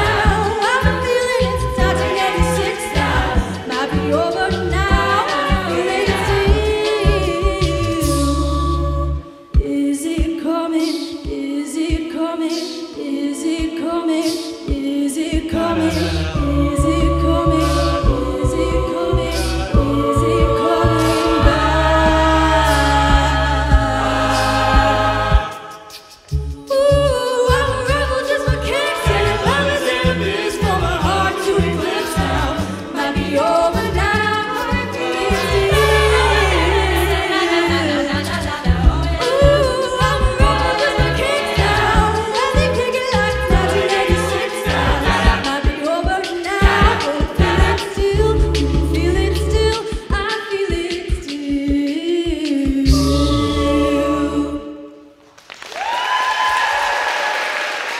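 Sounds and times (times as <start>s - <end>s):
low sung bass line: 0.0s - 9.2s, 15.5s - 25.5s, 26.3s - 45.6s, 46.6s - 50.1s, 52.9s - 54.6s
backing vocals: 0.0s - 55.0s
a cappella group singing chords: 0.0s - 55.2s
beatboxing: 9.1s - 36.1s, 37.7s - 53.5s.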